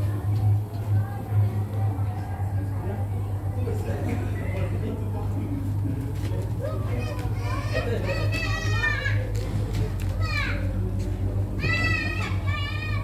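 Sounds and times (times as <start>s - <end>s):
steady low hum: 0.0s - 13.0s
children calling and squealing: 6.6s - 9.4s, 11.6s - 13.0s.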